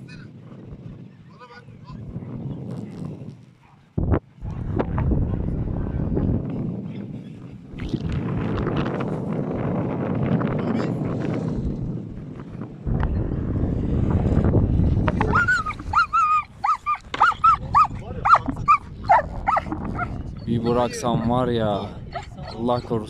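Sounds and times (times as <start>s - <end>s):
dog whimpering: 15.3s - 23.0s.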